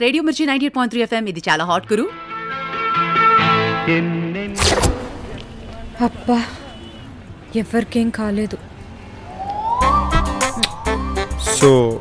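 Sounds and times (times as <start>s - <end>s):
rising siren-like tone: 9.0s - 11.7s.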